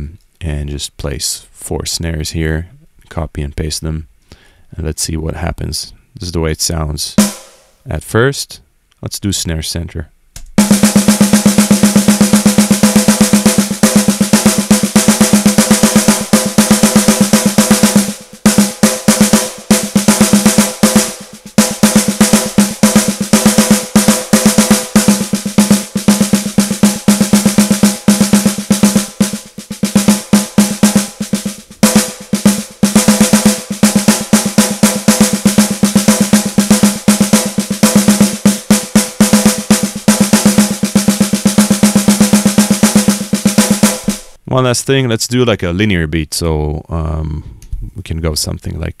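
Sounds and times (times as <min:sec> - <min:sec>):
fast snare drum roll: 0:07.2 - 0:07.7, 0:10.6 - 0:44.4.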